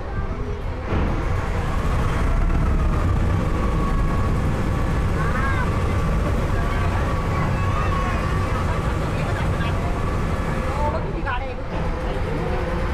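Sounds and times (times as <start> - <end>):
passengers' voices: 0.0 - 12.9
ship engine low rumble: 0.0 - 12.9.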